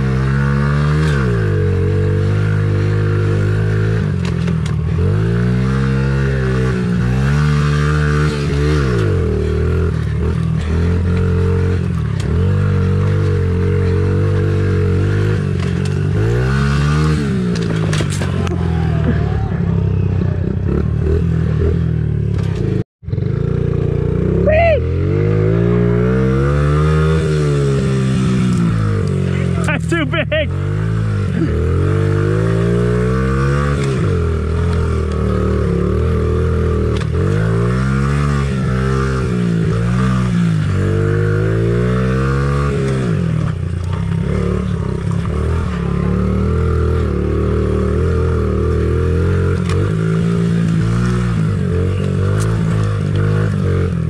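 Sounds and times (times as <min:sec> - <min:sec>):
small motorbike engine revving: 0:00.0 - 0:54.0.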